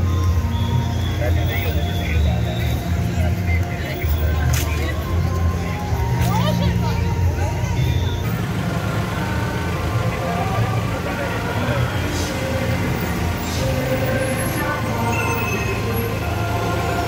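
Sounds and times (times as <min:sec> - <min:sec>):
street crowd chatter: 0:00.0 - 0:17.0
truck engines running: 0:00.0 - 0:17.0.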